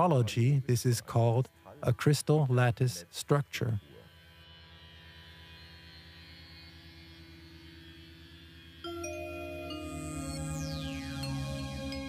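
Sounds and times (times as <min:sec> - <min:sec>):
low pulsing hum: 0:00.0 - 0:12.0.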